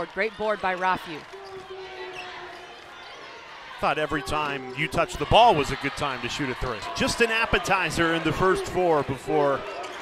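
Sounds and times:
arena crowd murmur: 0.0s - 10.0s.

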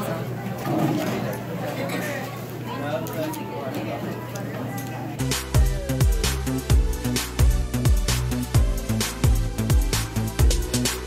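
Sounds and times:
restaurant chatter: 0.0s - 6.9s.

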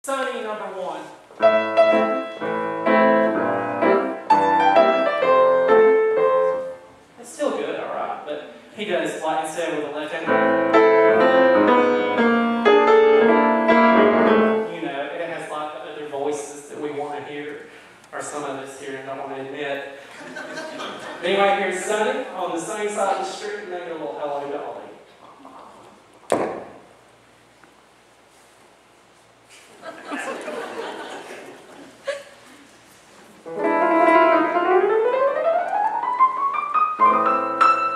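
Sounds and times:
grand piano chords: 1.3s - 7.1s, 10.1s - 14.9s, 33.4s - 37.9s
sharp knock: 26.3s - 26.9s.

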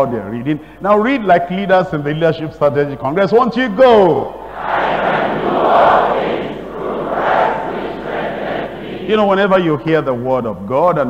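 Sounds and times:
congregation reading aloud in unison: 0.1s - 11.0s.

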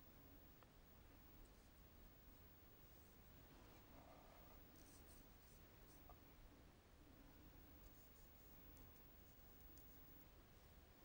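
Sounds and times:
paintbrush scratching on paper: 3.9s - 6.1s, 7.8s - 10.0s.

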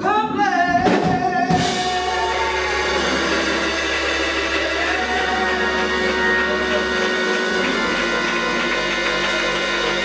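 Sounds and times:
keyboard chords: 1.5s - 10.0s
hands clapping: 3.9s - 10.0s.

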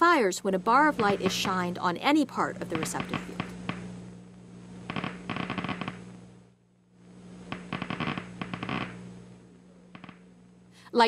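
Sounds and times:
steady low hum: 0.0s - 11.0s
rapid crackling clicks: 4.8s - 6.0s, 7.5s - 9.0s, 9.9s - 10.2s.

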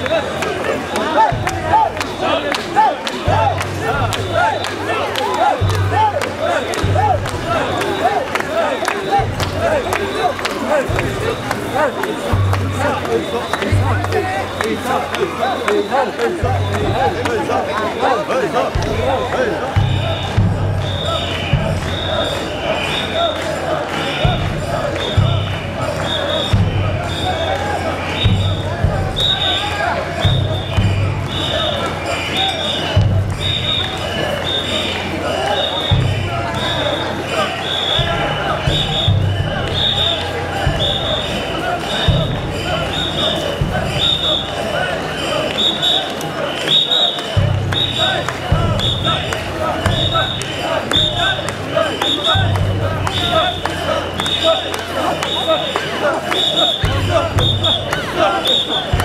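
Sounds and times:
crowd chanting together: 0.0s - 59.0s
short high whistle blasts: 29.2s - 35.0s, 37.5s - 40.2s.

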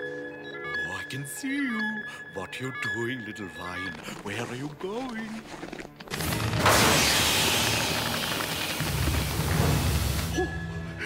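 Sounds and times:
gas hissing from pipe: 6.6s - 10.4s.

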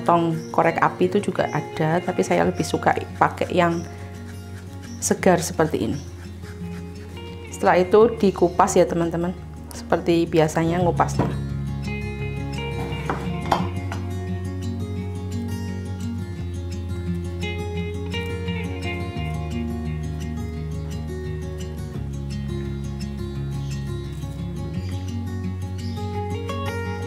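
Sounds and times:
light instrumental music: 0.0s - 27.0s.

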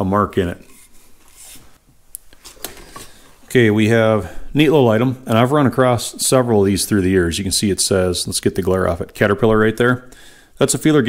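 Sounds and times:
paper rustling: 0.8s - 3.2s.

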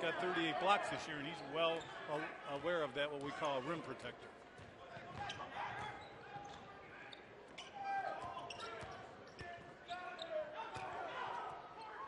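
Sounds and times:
crowd murmur in large hall: 0.0s - 12.0s
shoe squeaks and knocks: 5.2s - 10.9s.

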